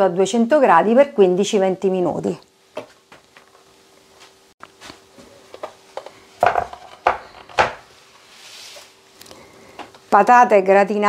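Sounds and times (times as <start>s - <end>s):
wooden board knocking on table: 6.4s - 7.8s.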